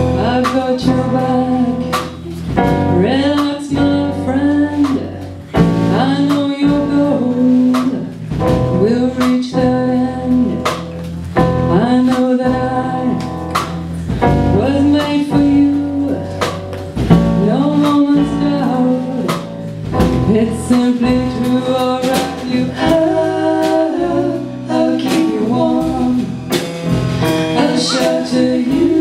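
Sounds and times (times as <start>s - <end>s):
drum kit beat: 0.0s - 29.0s.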